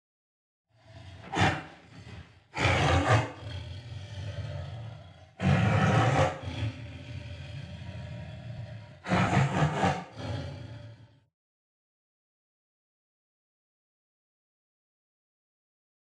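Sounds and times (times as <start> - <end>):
big cat roaring: 0.7 - 11.3
low rumbling growls: 0.7 - 11.3.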